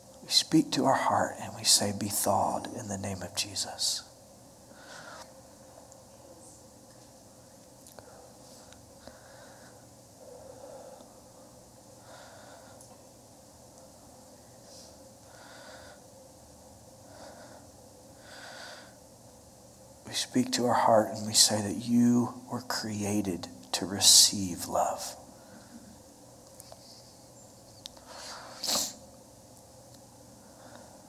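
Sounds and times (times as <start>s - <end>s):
faint low hum: 0.0s - 31.0s
man breathing softly: 4.7s - 5.4s, 8.0s - 13.1s, 14.6s - 16.1s, 17.0s - 19.1s, 25.3s - 26.1s, 28.0s - 29.0s, 30.3s - 31.0s
person sneezing: 28.5s - 29.0s.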